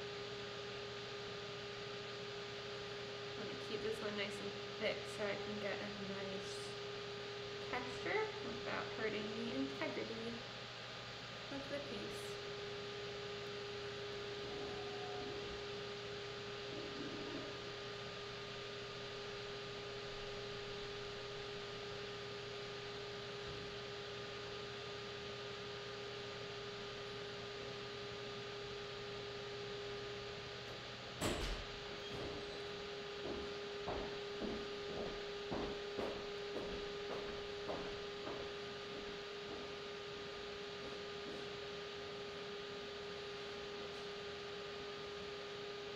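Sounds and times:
pottery wheel humming: 0.0 - 45.9.

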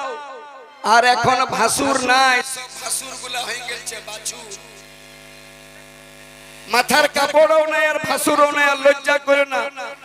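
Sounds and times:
loud voice: 0.0 - 4.8
electrical hum: 1.2 - 10.0.

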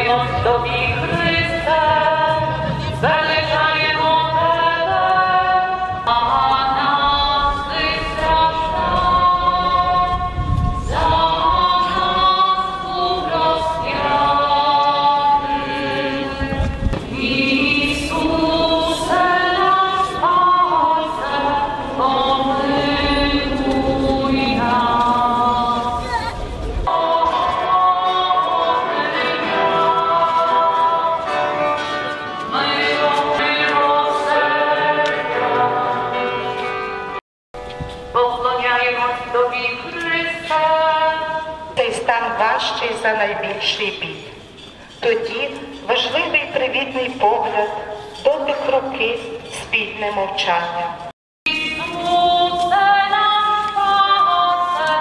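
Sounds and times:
group singing a hymn: 0.0 - 37.1.

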